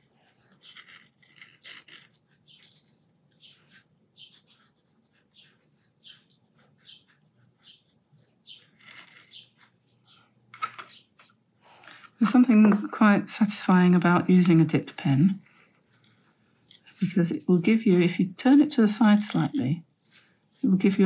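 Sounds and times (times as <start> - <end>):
pen nib scratching on paper: 0.0 - 10.0.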